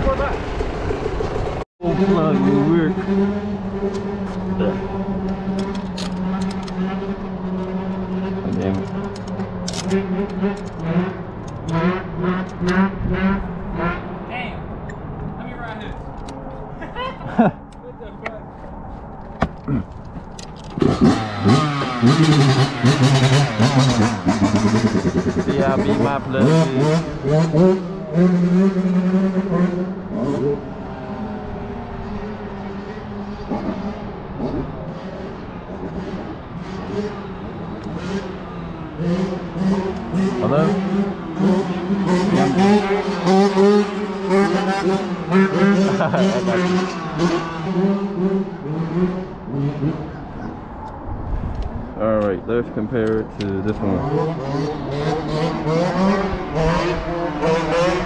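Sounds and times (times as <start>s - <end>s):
two-stroke engine revving: 0.0s - 14.1s, 20.7s - 50.2s, 52.6s - 58.0s.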